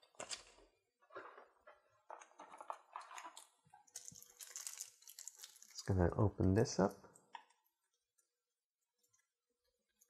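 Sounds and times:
plastic packaging crinkling: 0:02.2 - 0:06.0.

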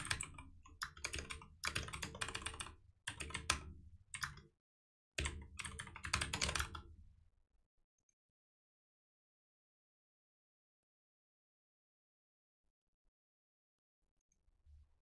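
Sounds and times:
computer keyboard typing: 0:00.0 - 0:04.4, 0:05.2 - 0:06.9.

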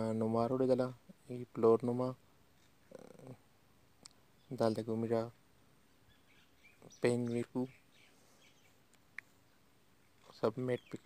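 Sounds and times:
faint high chirps: 0:05.8 - 0:11.0.

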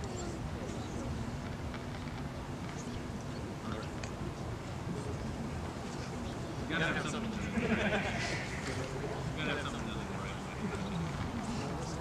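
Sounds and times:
people talking softly: 0:00.0 - 0:12.0.

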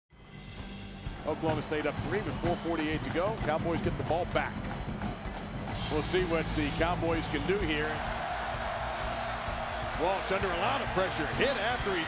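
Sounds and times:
background music: 0:00.1 - 0:12.0
stadium crowd cheering: 0:01.2 - 0:12.0.

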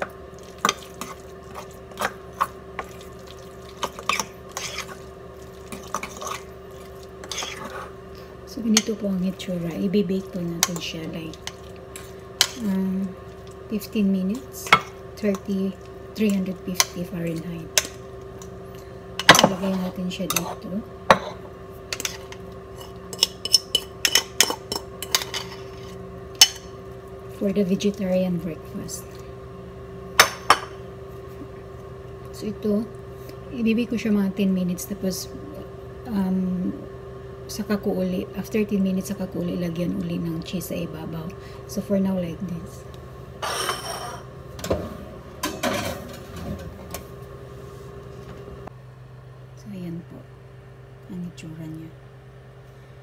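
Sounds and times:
steady low hum: 0:00.0 - 0:53.0
fork scraping ceramic bowl: 0:03.8 - 0:05.0, 0:05.7 - 0:06.5, 0:07.2 - 0:08.0.

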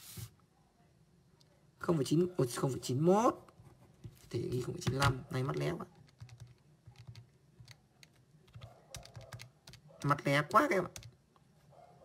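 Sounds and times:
calculator buttons clicking: 0:06.0 - 0:11.2.

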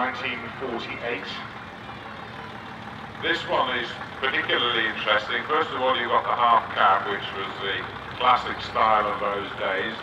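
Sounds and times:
diesel engine running with low rumble: 0:00.0 - 0:10.0.

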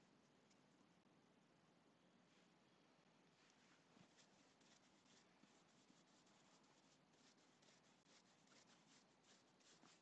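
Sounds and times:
paintbrush scratchy strokes: 0:02.2 - 0:10.0.

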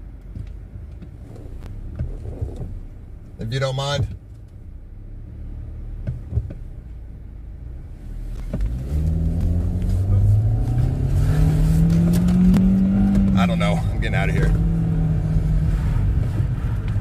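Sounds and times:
car engine accelerating: 0:00.0 - 0:17.0.

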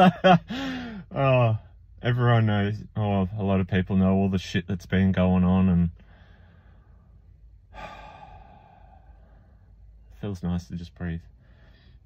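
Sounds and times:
man exhaling: 0:00.5 - 0:01.1, 0:07.7 - 0:09.8.

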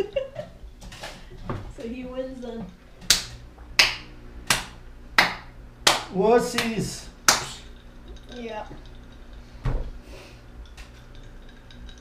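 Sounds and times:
person clapping slowly: 0:03.1 - 0:07.7.

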